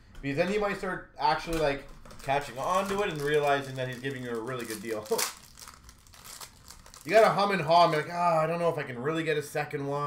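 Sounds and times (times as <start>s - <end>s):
plastic wrapper crinkling: 2.2s - 8.0s.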